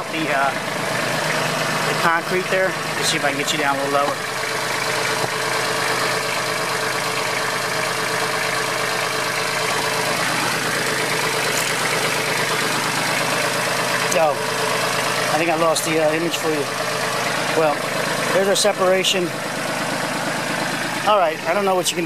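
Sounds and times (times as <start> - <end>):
demolition machine engine running: 0.0 - 22.0.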